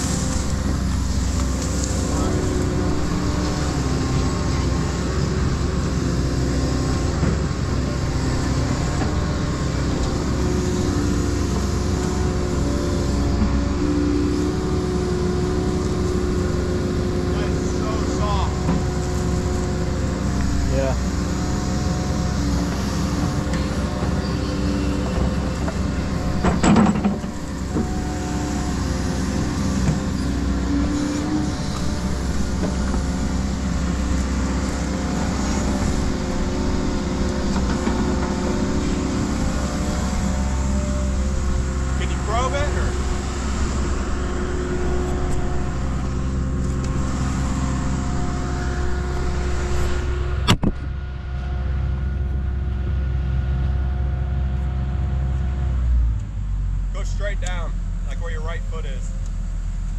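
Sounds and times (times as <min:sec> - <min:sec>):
excavator engine and hydraulics: 0:00.0 - 0:59.9.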